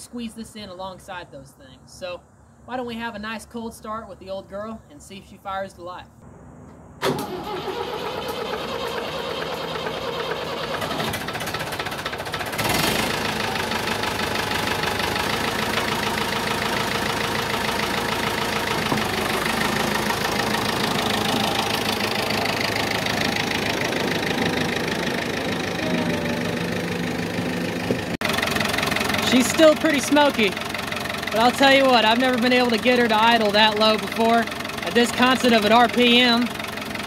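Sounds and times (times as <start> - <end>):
diesel engine starting and idling: 6.2 - 37.0.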